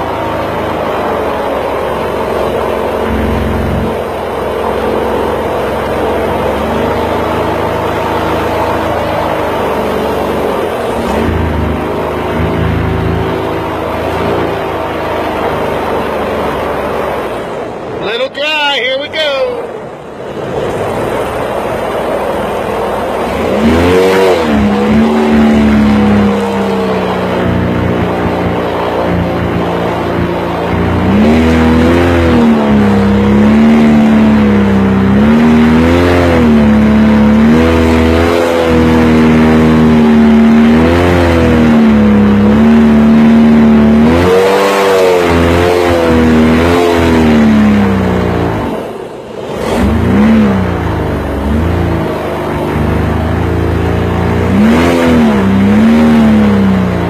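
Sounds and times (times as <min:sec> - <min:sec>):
boat engine running: 0:00.0 - 0:57.0.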